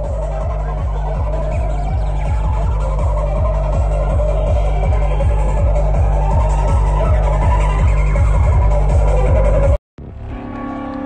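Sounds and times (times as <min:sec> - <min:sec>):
fast kick drum: 0:00.0 - 0:09.8
heavy bass: 0:00.0 - 0:11.0
wavering synth line: 0:00.0 - 0:11.0.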